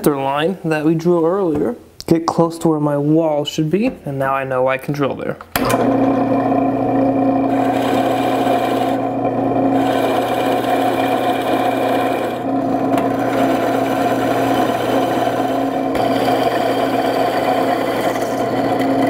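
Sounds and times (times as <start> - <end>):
drill bit cutting wood: 5.6 - 19.0
drill press motor hum: 5.6 - 19.0.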